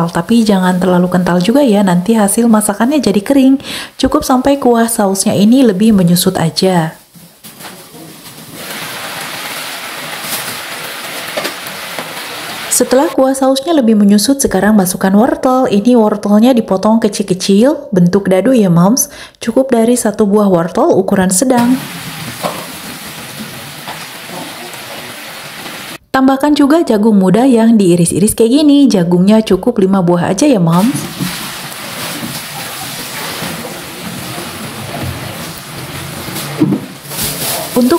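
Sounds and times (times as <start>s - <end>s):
sauce bubbling and sizzling in pan: 8.5s - 13.0s, 21.8s - 26.0s, 30.9s - 36.7s.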